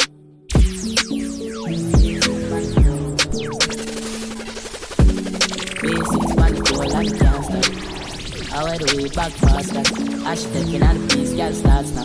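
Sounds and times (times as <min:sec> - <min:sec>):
turntable scratching: 0:05.3 - 0:10.1
dancehall beat with kick drum: 0:09.4 - 0:10.0, 0:10.8 - 0:12.0.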